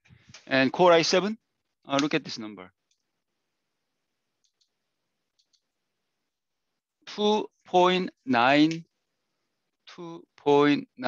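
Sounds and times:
faint mouse clicks: 0:02.8 - 0:03.1, 0:04.4 - 0:05.7.

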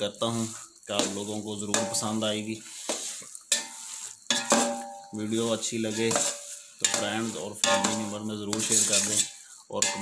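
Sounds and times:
faint sizzle: 0:00.0 - 0:10.0
spatula scraping a pot: 0:00.0 - 0:10.0.

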